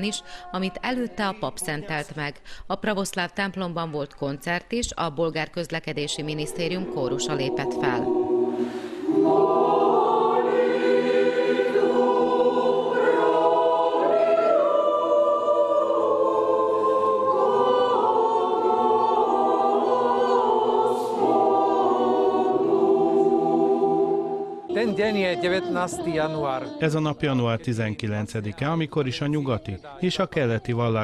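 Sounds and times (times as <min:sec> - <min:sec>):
mixed choir singing chords: 0:06.1 - 0:27.7
man speaking: 0:24.7 - 0:31.0.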